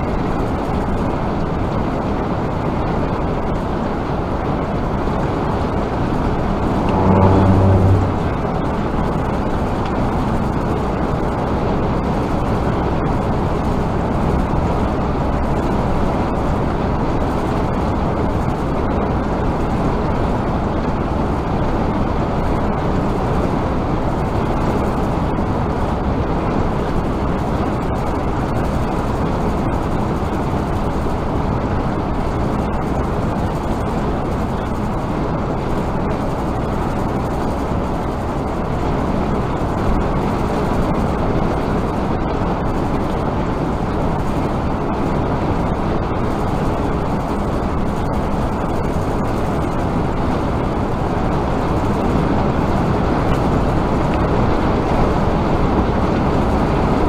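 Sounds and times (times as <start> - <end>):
vehicle road and engine noise: 0.0 - 57.0.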